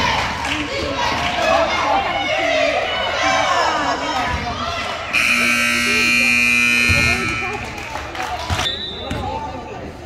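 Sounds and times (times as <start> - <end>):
scoreboard buzzer: 5.1 - 7.8.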